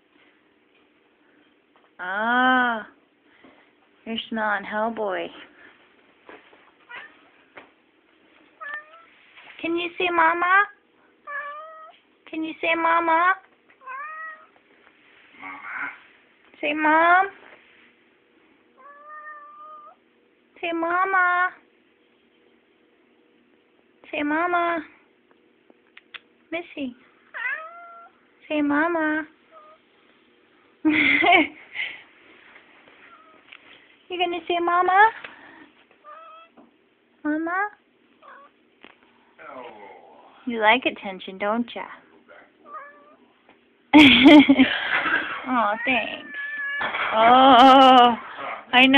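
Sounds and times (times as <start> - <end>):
cat chirping: 8.6 - 9.2, 27.4 - 28.2, 36.0 - 36.6
cat meowing: 8.6 - 9.2, 11.3 - 12.0, 13.8 - 14.6, 18.8 - 20.0, 27.4 - 28.2, 36.0 - 36.6, 38.2 - 38.6, 42.6 - 43.2, 45.8 - 47.2.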